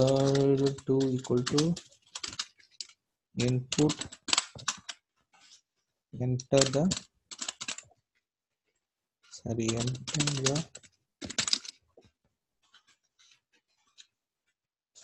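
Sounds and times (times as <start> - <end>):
person speaking: 0.0 - 1.9, 3.4 - 4.1, 6.1 - 7.1, 9.3 - 10.8
computer keyboard typing: 0.0 - 5.0, 6.5 - 7.9, 9.6 - 11.8.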